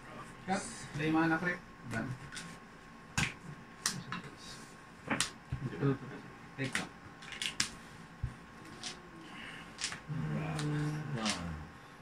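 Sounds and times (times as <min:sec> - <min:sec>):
cards clicking and tapping: 0:06.6 - 0:07.8, 0:09.7 - 0:11.4.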